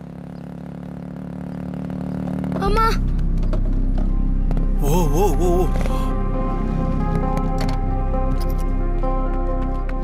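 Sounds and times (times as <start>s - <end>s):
motorcycle engine running: 0.0s - 8.6s.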